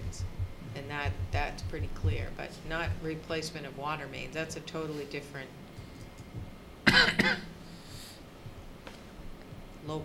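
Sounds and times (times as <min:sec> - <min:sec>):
person coughing: 0:06.8 - 0:07.6.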